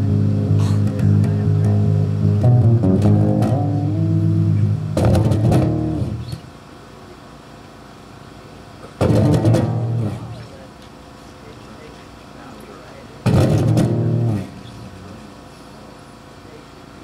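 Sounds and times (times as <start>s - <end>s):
electric bass guitar: 0.0s - 6.6s, 8.8s - 10.8s, 13.2s - 15.4s.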